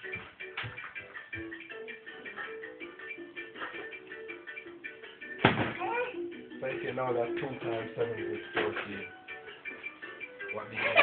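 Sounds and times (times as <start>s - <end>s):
light ticking rhythm: 0.0s - 11.0s.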